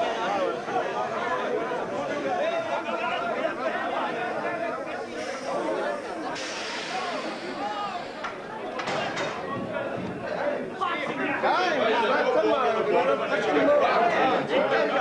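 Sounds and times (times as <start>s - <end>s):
babble of men's voices: 0.0s - 15.0s
steady hiss: 4.6s - 8.8s.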